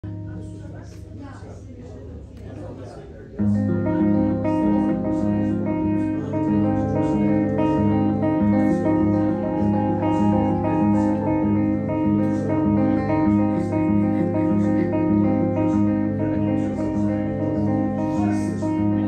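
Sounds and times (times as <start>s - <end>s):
electric guitar: 3.4s - 19.0s.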